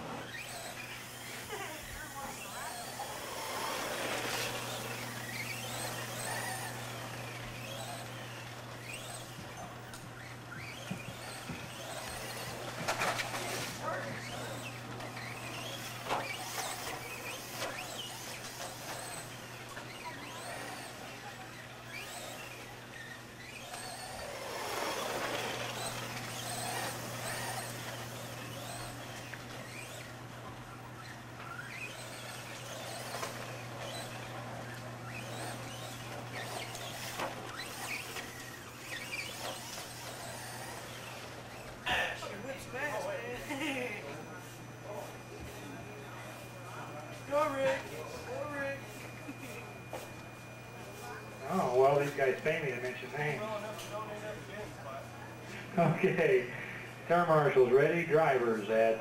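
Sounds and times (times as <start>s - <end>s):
rc car motors whining: 0.0s - 59.0s.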